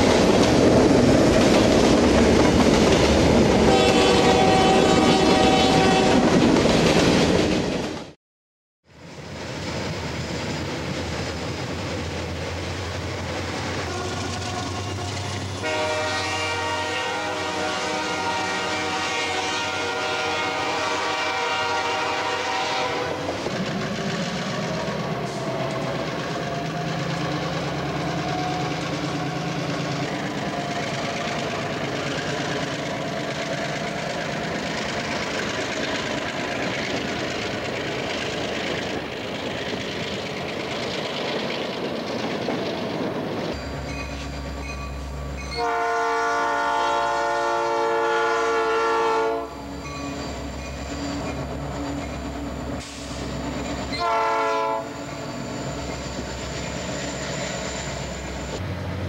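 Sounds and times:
freight train rumbling past: 0:00.0 - 0:08.2, 0:08.9 - 0:59.0
locomotive air horn blasts: 0:03.6 - 0:06.3, 0:13.9 - 0:23.2, 0:45.6 - 0:49.7, 0:53.9 - 0:55.0.

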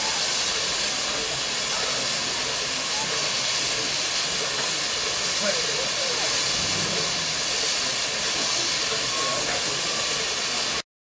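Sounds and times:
steam hissing from boiler: 0:00.0 - 0:10.8.

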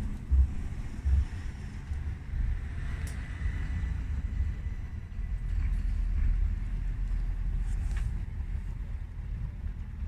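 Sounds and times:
distant tram approaching: 0:00.0 - 0:10.0
wind buffeting microphone: 0:00.0 - 0:10.0.

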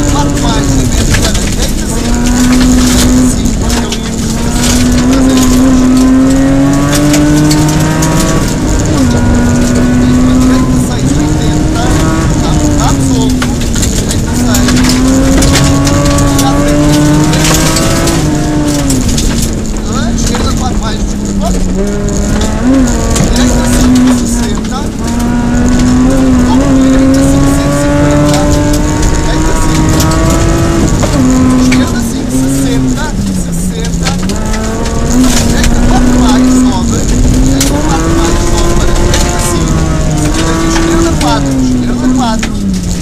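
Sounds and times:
car engine revving hard: 0:00.0 - 0:43.0
road noise on dirt: 0:00.0 - 0:43.0.

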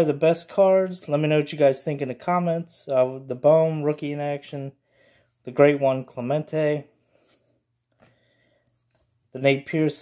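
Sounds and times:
trading cards shuffling: 0:07.1 - 0:09.9.

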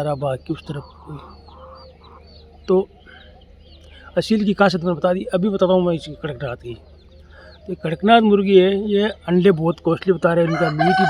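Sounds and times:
chickens clucking softly: 0:00.0 - 0:11.0
high chirps: 0:00.0 - 0:11.0.

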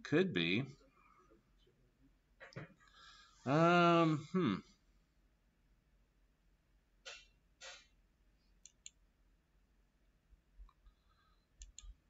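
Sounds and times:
computer mouse clicks: 0:08.6 - 0:09.0, 0:11.6 - 0:12.0.

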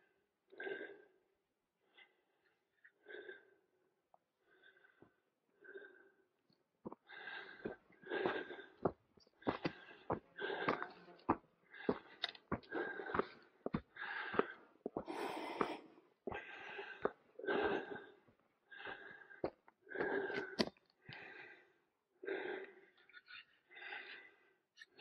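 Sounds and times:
person breathing hard: 0:03.0 - 0:03.7, 0:04.4 - 0:06.3, 0:06.9 - 0:25.0
footsteps on dirt trail: 0:09.4 - 0:13.8.

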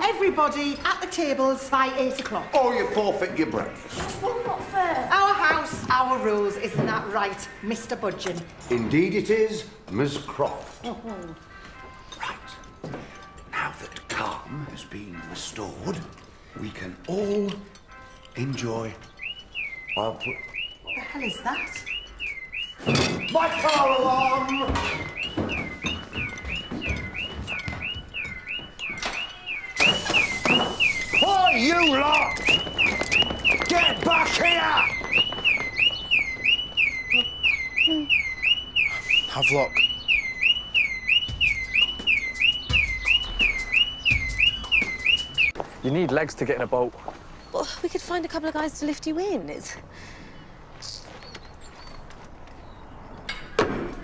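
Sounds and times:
high bird chirps: 0:18.9 - 0:45.6
car alarm sounding: 0:19.0 - 0:45.6.

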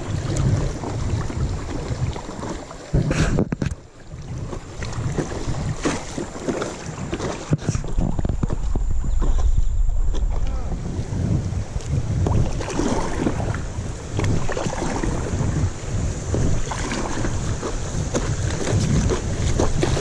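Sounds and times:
paddle knocks and splashes: 0:00.0 - 0:20.0
river current rushing: 0:00.0 - 0:20.0
wind rumbling on microphone: 0:00.0 - 0:20.0.

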